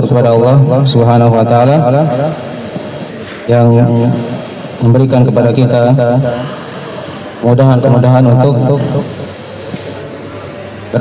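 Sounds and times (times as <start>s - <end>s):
man talking: 0.0s - 2.6s, 3.5s - 6.6s, 7.4s - 9.2s, 10.8s - 11.0s
steady background noise: 0.0s - 11.0s.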